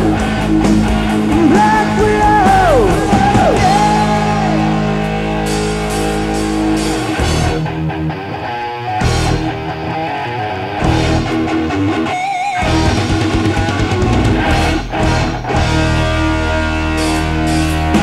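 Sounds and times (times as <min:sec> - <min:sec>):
bass and drums: 0:00.0 - 0:08.1, 0:09.0 - 0:09.9, 0:10.8 - 0:12.0, 0:12.6 - 0:18.0
electric guitar: 0:00.0 - 0:18.0.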